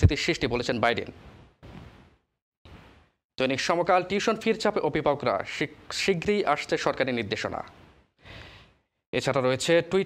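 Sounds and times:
in-breath: 0:07.8 - 0:09.0.

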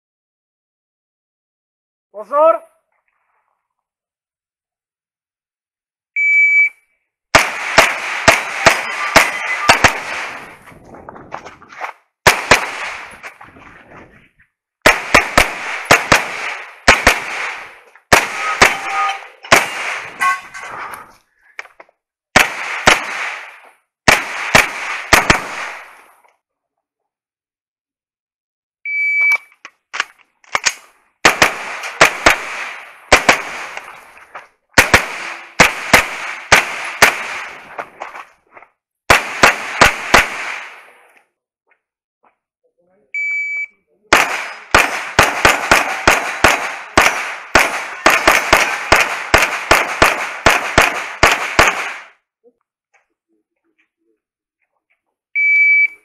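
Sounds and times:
shot timer beep: 0:06.2 - 0:06.8, 0:28.9 - 0:29.5, 0:43.2 - 0:43.8, 0:55.4 - 0:56.0
pistol shots: 0:07.3 - 0:10.6, 0:12.2 - 0:13.3, 0:14.8 - 0:20.2, 0:22.4 - 0:26.0, 0:30.6 - 0:34.0, 0:34.8 - 0:37.8, 0:39.1 - 0:41.0, 0:44.1 - 0:52.2.

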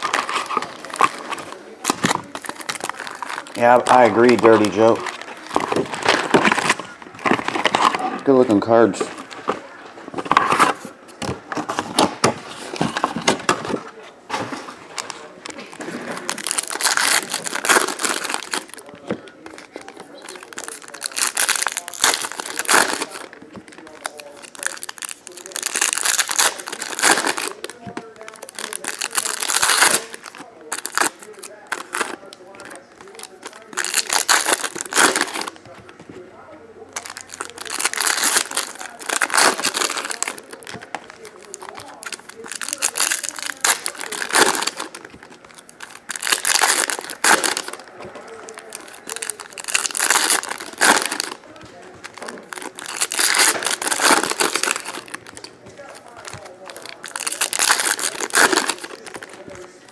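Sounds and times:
foil wrappers crinkling and tearing: 0:00.0 - 0:36.0, 0:36.8 - 0:59.9.

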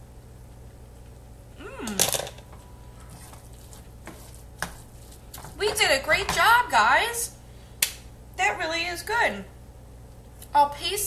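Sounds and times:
wooden spoon scraping skillet: 0:03.0 - 0:06.6.

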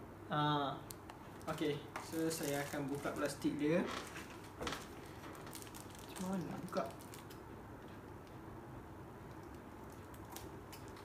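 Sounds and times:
scissors cutting plastic bag: 0:01.4 - 0:03.4, 0:04.0 - 0:07.4.

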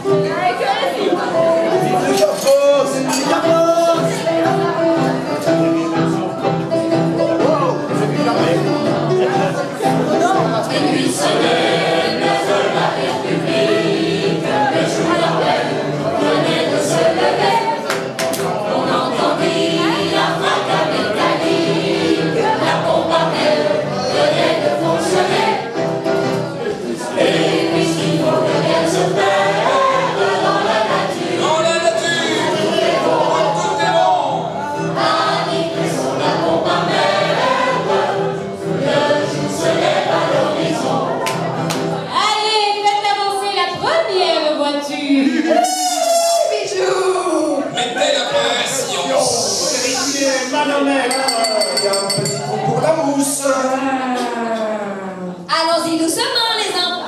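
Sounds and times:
group singing in chorus: 0:07.9 - 0:42.0.

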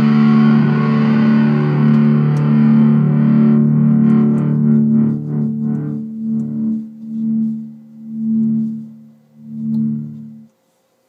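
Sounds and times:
electric guitar chord ringing: 0:00.0 - 0:10.5.

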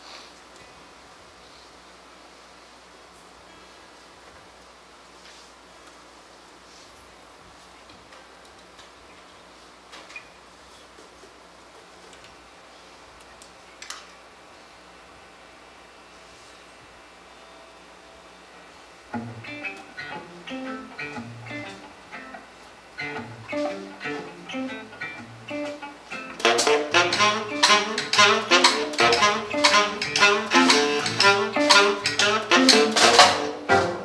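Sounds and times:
bass guitar: 0:19.1 - 0:34.0
electric guitar: 0:19.1 - 0:34.0
drums: 0:23.0 - 0:34.0
tenor saxophone: 0:23.1 - 0:34.0.

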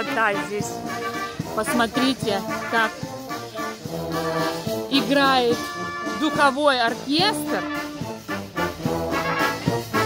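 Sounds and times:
brass band playing dance music: 0:00.0 - 0:10.0.

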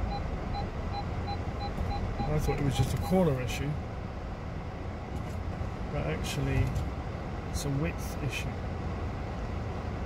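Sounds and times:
vehicle engines idling: 0:00.0 - 0:10.0.

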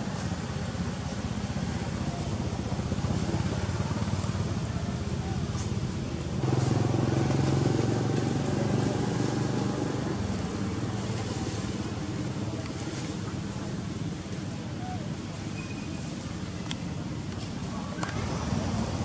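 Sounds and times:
vehicle engine running: 0:00.0 - 0:14.3.

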